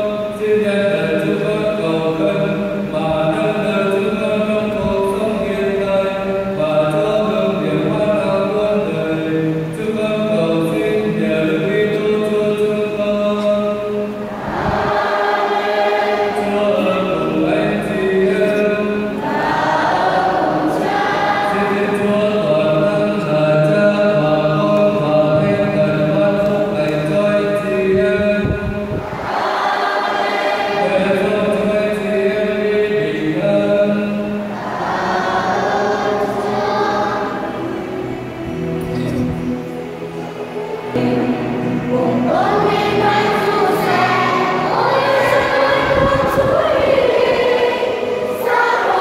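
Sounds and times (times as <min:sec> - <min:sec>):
church choir singing: 0:00.0 - 0:49.0.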